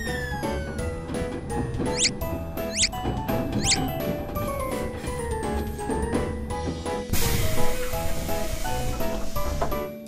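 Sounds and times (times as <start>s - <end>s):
high-pitched squeaky chirps: 1.9s - 3.0s, 3.6s - 3.9s.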